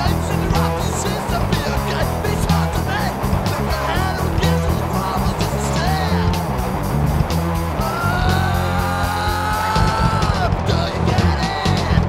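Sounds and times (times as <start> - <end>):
fast hardcore punk song: 0.0 - 12.0
rapid drum hits: 0.0 - 12.0.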